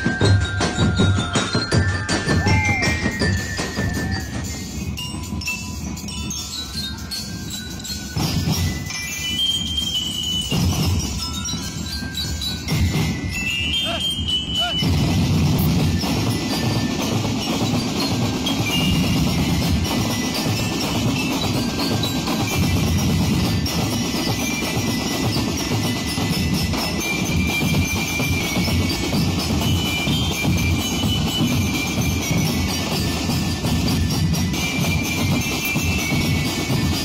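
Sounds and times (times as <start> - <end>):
snare and bass drumming: 0.0 - 5.1, 12.7 - 37.0
ringing bell-lyre notes: 0.0 - 37.0.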